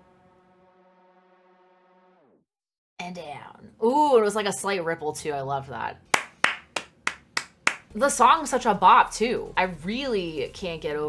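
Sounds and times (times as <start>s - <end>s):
sharp hand claps: 6.1s - 7.9s.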